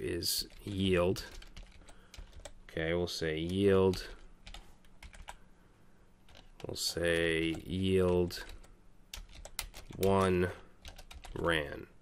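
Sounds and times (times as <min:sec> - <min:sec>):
computer keyboard typing: 0:00.4 - 0:02.6, 0:03.4 - 0:05.4, 0:06.2 - 0:11.6.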